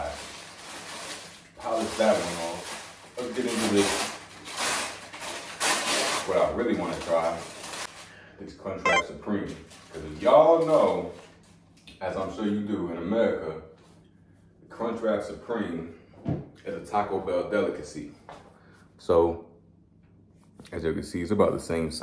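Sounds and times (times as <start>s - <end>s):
paper wrapper rustling: 0.2s - 7.9s.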